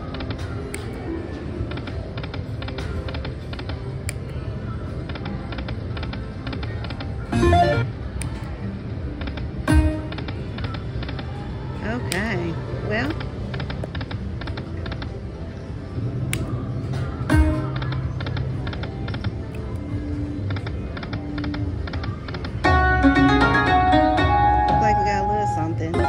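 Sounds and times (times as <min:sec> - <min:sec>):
electronic slot machine music: 0:07.0 - 0:11.0, 0:17.2 - 0:19.4, 0:21.5 - 0:26.0
loud game sound bursts: 0:07.3 - 0:07.9.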